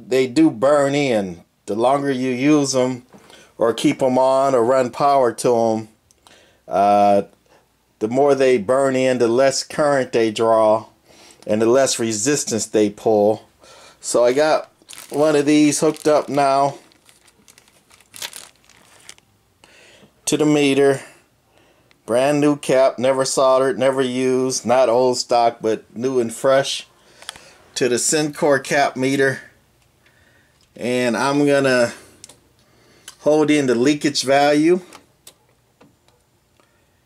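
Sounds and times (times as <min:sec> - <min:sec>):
plastic bag crinkling: 0:14.0 - 0:19.3.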